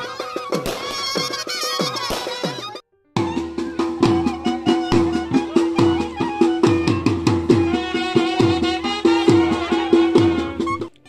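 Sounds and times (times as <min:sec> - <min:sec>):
drums beating fast rhythm: 0:00.0 - 0:10.9
wavering wind instrument melody: 0:00.0 - 0:11.0.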